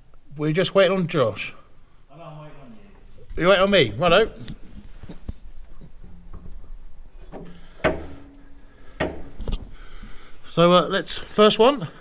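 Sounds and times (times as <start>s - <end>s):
low steady tone: 5.9s - 9.6s
clicks and knocks in steel compartment: 7.2s - 8.4s, 9.0s - 9.6s
sharp knock: 7.4s - 8.4s, 9.0s - 9.4s.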